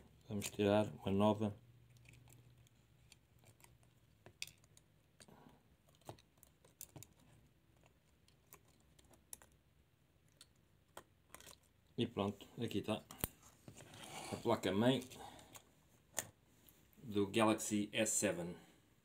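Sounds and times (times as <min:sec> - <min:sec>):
faint small clicks and taps: 0:01.9 - 0:09.6, 0:10.2 - 0:11.8.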